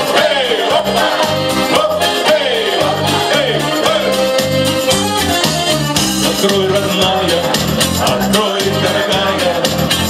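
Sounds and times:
men singing into microphones: 0.0s - 4.6s, 6.2s - 10.0s
instrumental accompaniment with beat: 0.0s - 10.0s.

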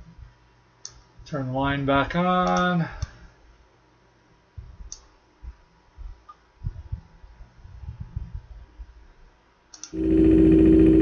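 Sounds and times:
faint low thumps: 4.5s - 9.1s
computer mouse clicking: 4.9s - 5.1s, 9.7s - 10.0s.

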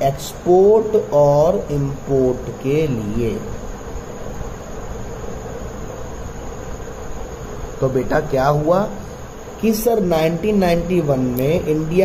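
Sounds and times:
background hiss: 0.0s - 12.0s
low buzzing hum: 0.0s - 12.0s.

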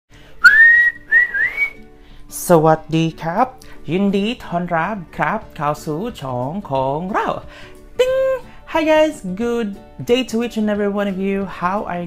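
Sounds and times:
person whistling: 0.4s - 1.8s.

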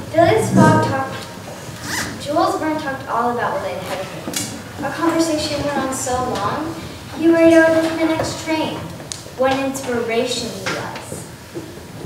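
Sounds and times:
girl speaking: 0.1s - 1.2s, 2.2s - 4.2s, 4.8s - 8.8s.

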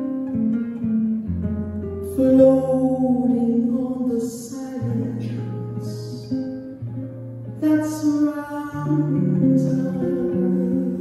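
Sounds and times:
acoustic guitar plucking chords: 0.0s - 11.0s.

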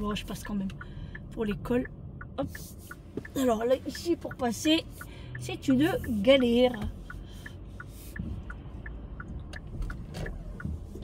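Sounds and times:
low rumble of car: 0.0s - 11.0s
turn signal ticking: 0.0s - 11.0s.

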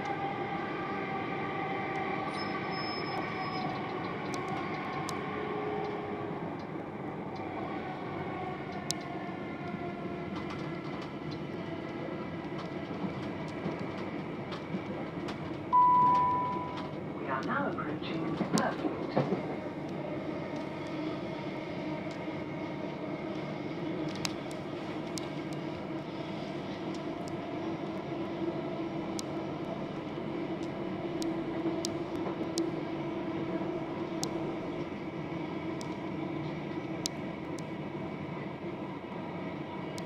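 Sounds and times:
train wheels rumbling on rails: 0.0s - 40.0s.

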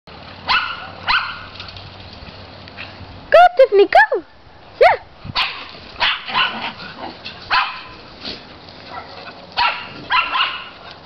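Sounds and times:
dog barking: 0.5s - 1.5s, 4.8s - 6.8s, 7.5s - 7.9s, 8.9s - 10.8s.

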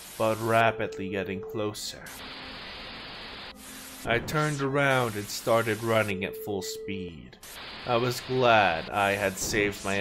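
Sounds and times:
tv static hiss: 0.0s - 10.0s.

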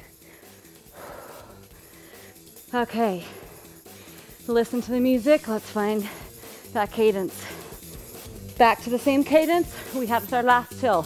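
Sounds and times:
woman breathing out hard: 0.0s - 2.5s
faint background music: 0.0s - 11.0s.

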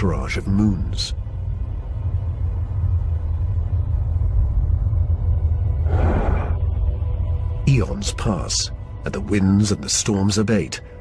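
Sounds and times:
deep storm rumble: 0.0s - 9.3s.

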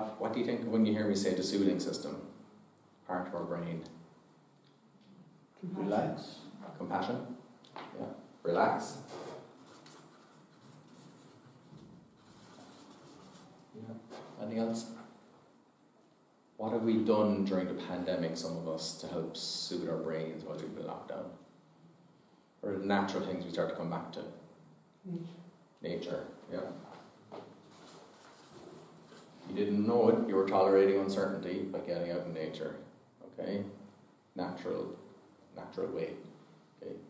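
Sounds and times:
marker pen writing on paper: 9.2s - 13.6s, 27.7s - 29.3s.

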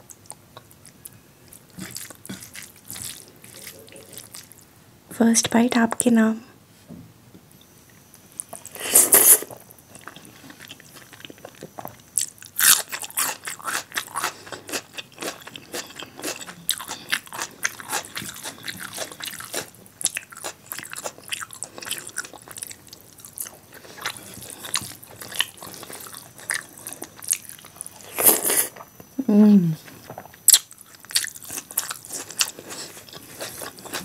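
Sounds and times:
wet chewing: 8.4s - 28.8s, 30.2s - 34.0s.

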